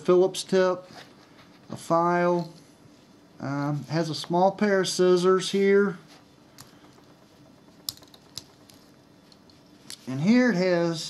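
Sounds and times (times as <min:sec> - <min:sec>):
multi-tool clicks: 0:07.8 - 0:10.1.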